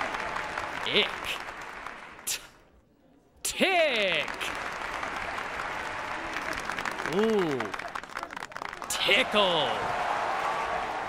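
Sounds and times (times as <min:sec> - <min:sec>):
applause: 0:00.0 - 0:02.3, 0:03.7 - 0:11.0.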